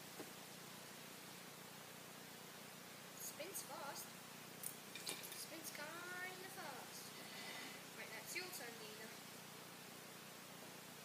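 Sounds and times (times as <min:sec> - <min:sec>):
child speaking: 0:05.4 - 0:07.1, 0:08.0 - 0:09.2.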